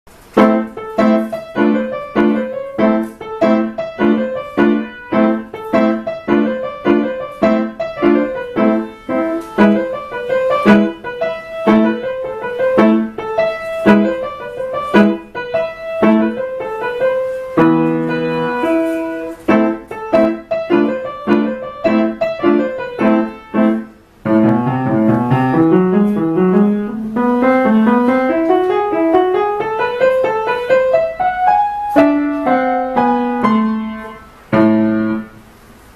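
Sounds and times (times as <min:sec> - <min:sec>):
solo piano piece: 0:00.1 - 0:35.9.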